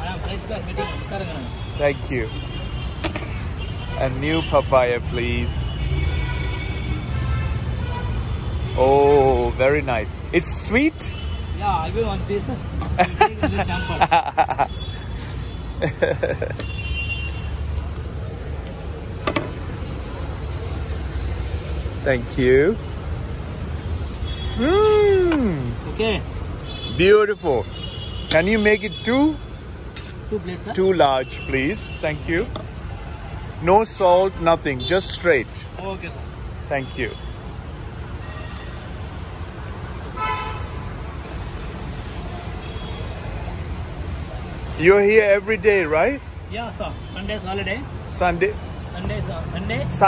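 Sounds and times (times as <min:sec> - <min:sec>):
street traffic rumble: 0:00.0 - 0:50.0
vehicle horn toot: 0:40.2 - 0:40.8.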